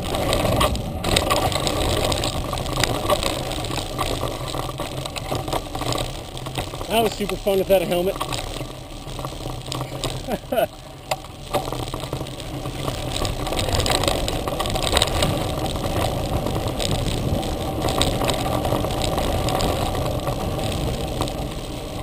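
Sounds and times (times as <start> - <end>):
bike rattling over bumps: 0.0 - 22.0
bike tyres rumbling on dirt: 0.0 - 22.0
wind rush: 11.7 - 22.0.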